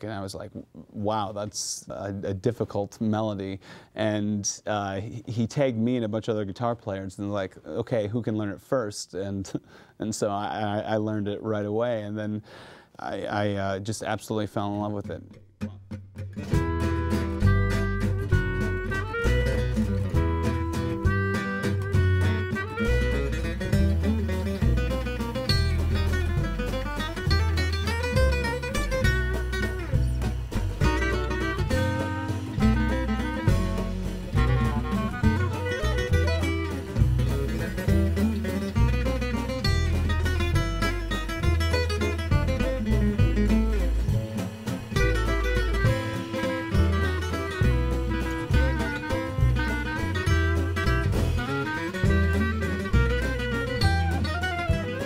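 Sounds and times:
rhythm guitar accompaniment: 13.0s - 55.0s
acoustic guitar fast melody: 13.1s - 55.0s
upright bass line: 15.1s - 55.0s.

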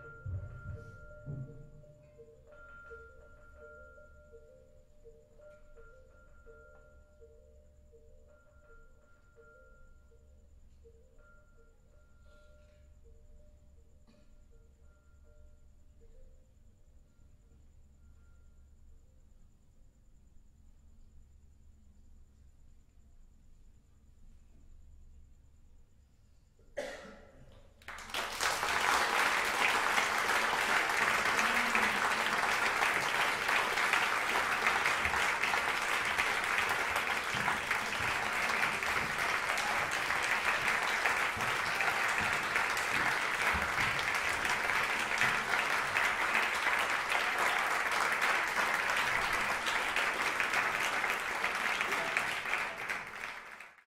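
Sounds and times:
audience applause: 27.8s - 53.8s.

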